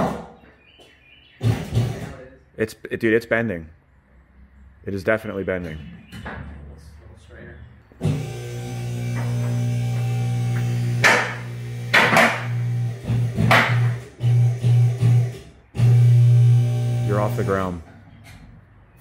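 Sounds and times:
hydraulic pump humming: 0:08.0 - 0:17.8.

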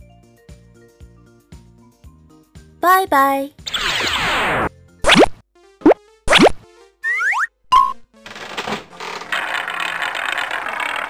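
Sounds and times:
light children's music: 0:00.0 - 0:03.6, 0:05.6 - 0:07.4
rising blips: 0:03.7 - 0:08.0.

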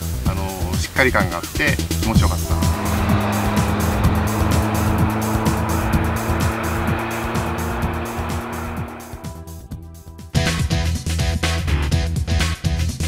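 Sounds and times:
car tyre roar passing: 0:02.2 - 0:09.7.

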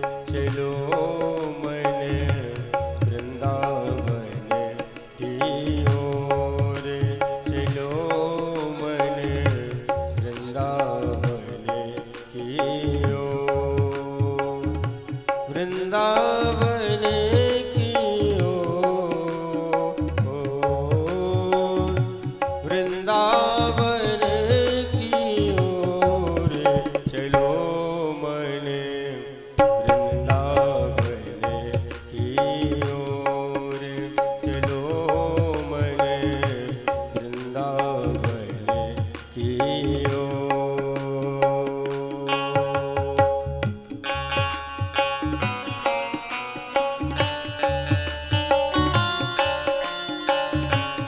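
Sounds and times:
tabla rhythm: 0:00.0 - 0:28.8, 0:29.5 - 0:51.0
man singing: 0:00.0 - 0:51.0
sustained keyboard melody: 0:41.4 - 0:51.0.

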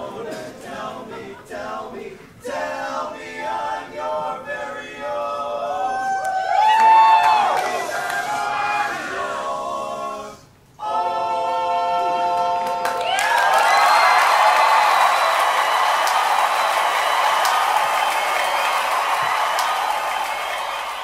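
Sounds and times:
a cappella barbershop singing: 0:00.0 - 0:06.2, 0:07.3 - 0:13.1
audience cheering and applauding: 0:06.1 - 0:09.3, 0:12.4 - 0:21.0.

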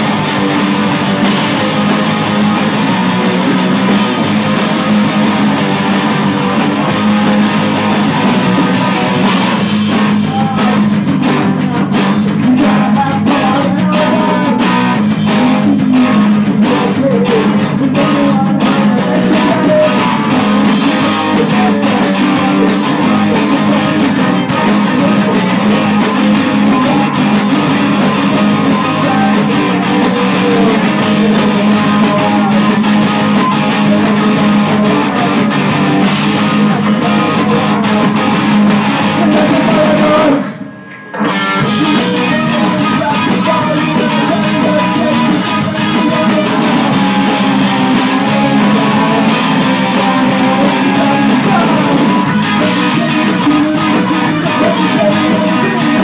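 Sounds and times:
drum kit with cymbals: 0:00.0 - 0:40.5, 0:41.6 - 0:56.0
electric guitars strummed: 0:00.0 - 0:56.0.

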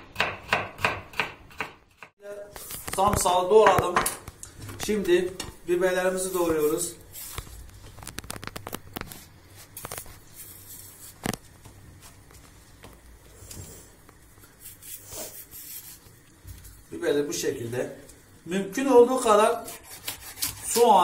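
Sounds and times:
peppers being handled: 0:06.3 - 0:12.5
knife cutting on wooden board: 0:19.7 - 0:20.9.

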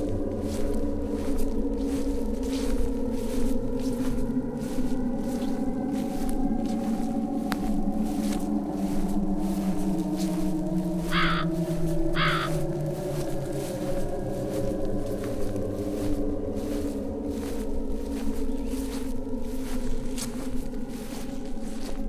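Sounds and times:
eerie music drone: 0:00.0 - 0:22.0
crow cawing: 0:11.0 - 0:13.9.

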